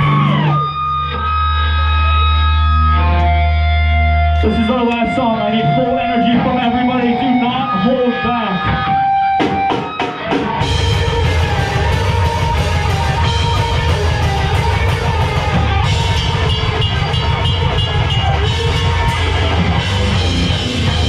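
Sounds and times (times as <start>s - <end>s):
live hardcore band playing: 0.0s - 21.0s.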